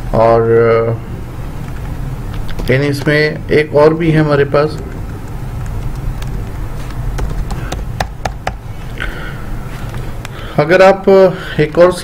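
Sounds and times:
low background rumble: 0.0s - 10.7s.

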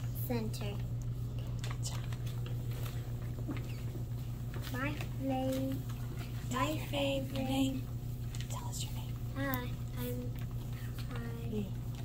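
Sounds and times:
steady low hum: 0.0s - 12.0s
paper sheets rustling and clicking: 0.5s - 12.0s.

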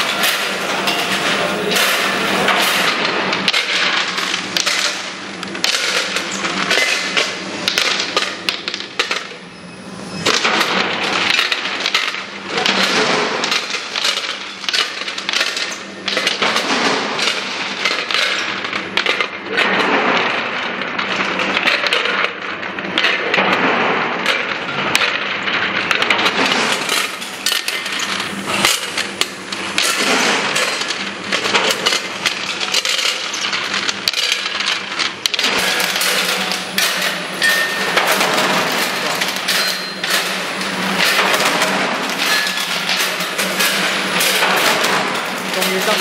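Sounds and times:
faint machine hum: 0.0s - 46.0s
small pieces rattling in steel hoppers: 25.9s - 46.0s.

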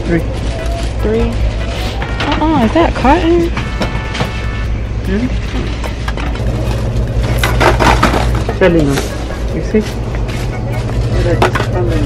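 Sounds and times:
steady low hum: 0.0s - 12.0s
items clattering into wire cart: 6.1s - 12.0s.

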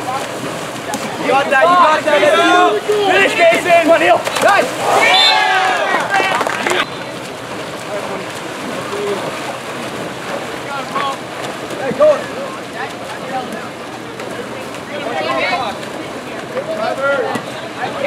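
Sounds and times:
water splashing in a pool: 0.0s - 18.0s
distant shouts: 1.5s - 7.3s.

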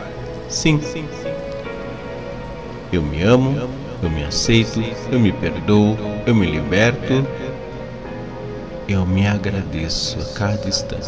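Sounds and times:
even hiss of noise: 0.0s - 11.0s
steady held binaural tones: 0.0s - 11.0s.

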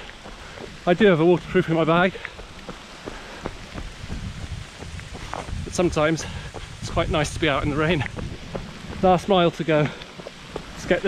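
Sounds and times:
heavy rain falling: 0.0s - 11.0s
wind rumbling on microphone: 0.0s - 11.0s.

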